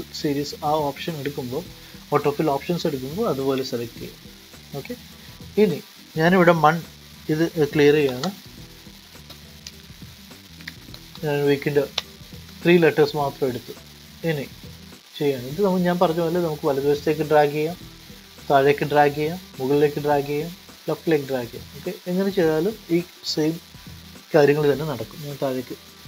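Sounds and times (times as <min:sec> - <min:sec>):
steady low background hiss: 0:00.0 - 0:26.0.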